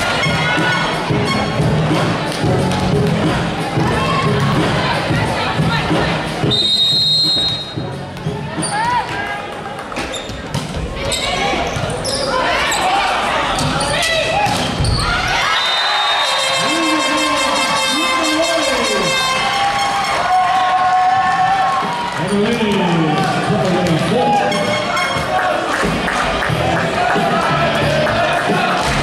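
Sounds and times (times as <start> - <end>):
players shouting: 11.0 - 29.0.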